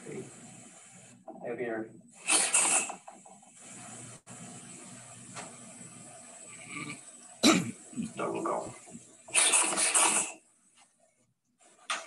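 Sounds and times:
faint steady hum: 3.1s - 12.0s
cough-like bursts: 6.6s - 8.3s.

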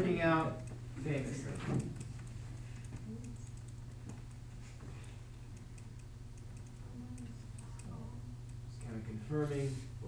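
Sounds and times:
steady low hum: 0.0s - 10.0s
faint light clicks and ticks: 0.4s - 9.1s.

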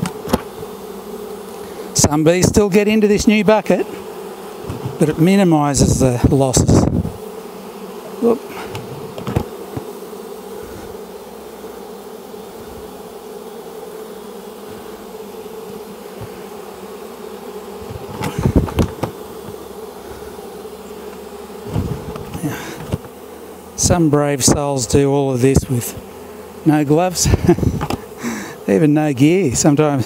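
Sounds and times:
bees humming: 0.0s - 30.0s
handling knocks: 4.6s - 5.2s, 8.7s - 9.9s, 17.8s - 19.6s.

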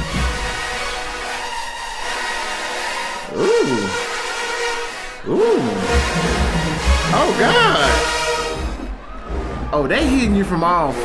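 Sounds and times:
marching band brass chords: 0.0s - 9.7s
swooping brass glides: 0.0s - 9.8s.

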